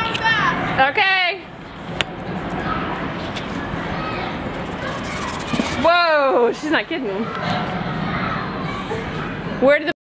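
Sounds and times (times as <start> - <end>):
faint voices: 1.6 - 9.9.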